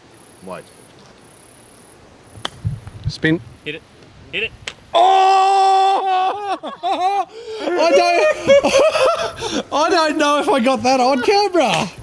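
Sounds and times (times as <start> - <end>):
golf club striking ball: 2.4 - 2.9.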